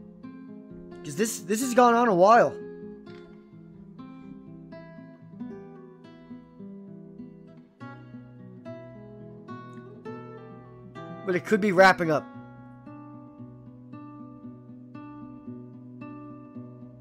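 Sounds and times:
clean guitar plucked notes: 0:01.8 - 0:17.0.

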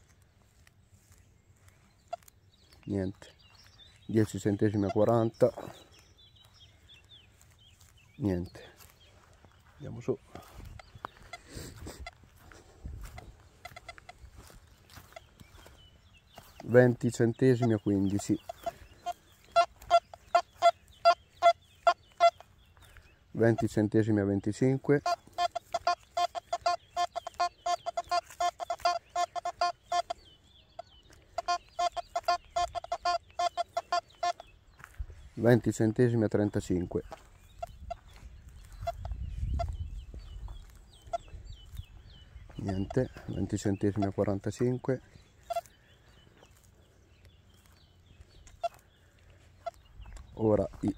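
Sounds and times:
footsteps on grass: 0:00.0 - 0:50.9
metal detector beeping: 0:25.0 - 0:30.2, 0:31.4 - 0:34.4.

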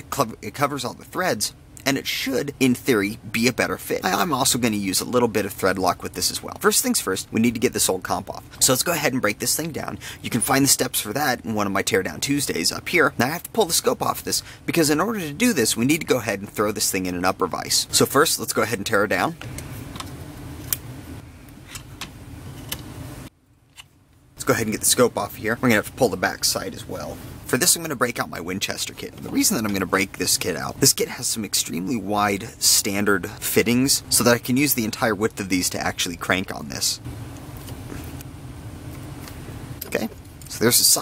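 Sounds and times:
steady low hum: 0:00.0 - 0:41.0.

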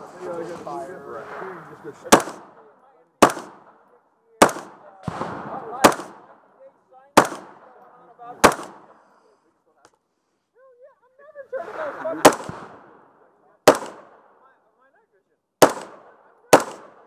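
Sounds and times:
rifle shots with echo: 0:01.1 - 0:06.6, 0:07.2 - 0:09.0, 0:11.7 - 0:14.6, 0:15.6 - 0:17.0.

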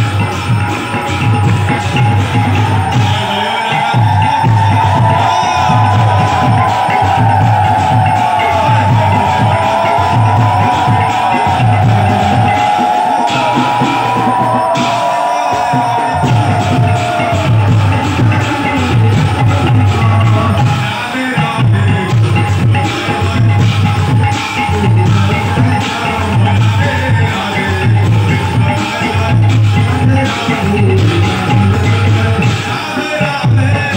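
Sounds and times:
high sliding melody: 0:00.0 - 0:33.0
devotional music over crowd: 0:00.0 - 0:33.9
low drumbeat: 0:03.9 - 0:21.0, 0:21.6 - 0:32.7.

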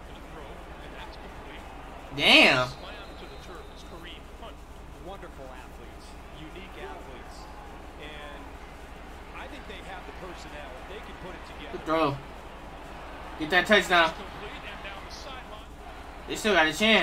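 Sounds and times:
faint tv sports commentary: 0:00.0 - 0:17.0
steady low hum: 0:00.0 - 0:17.0.

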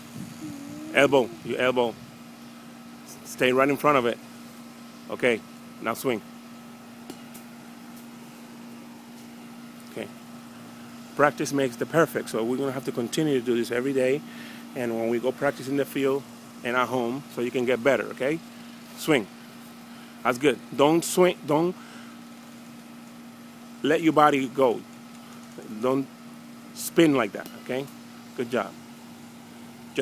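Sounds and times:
faint hiss: 0:00.0 - 0:06.3, 0:07.0 - 0:30.0
air conditioner unit humming: 0:00.0 - 0:30.0
man speaking: 0:00.7 - 0:02.0.

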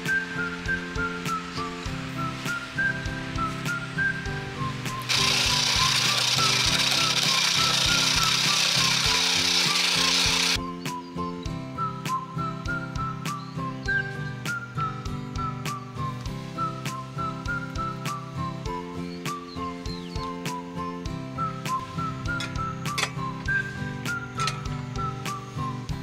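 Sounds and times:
whistled tune: 0:00.0 - 0:26.0
ice shaving machine grinding: 0:05.1 - 0:10.6.

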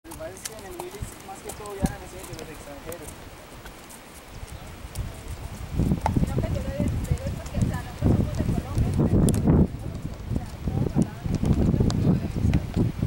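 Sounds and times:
horse hooves plodding: 0:00.0 - 0:13.0.

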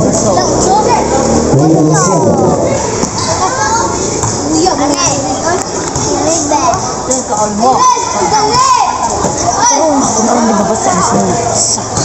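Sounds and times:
children's voices: 0:00.0 - 0:12.0
crowd hubbub: 0:00.0 - 0:12.0
people talking and calling out: 0:00.0 - 0:12.0.

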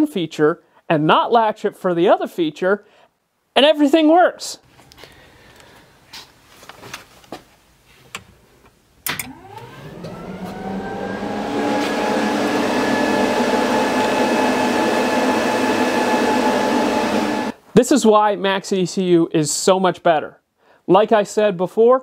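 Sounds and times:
electric fans and pump whirring: 0:09.0 - 0:17.6.

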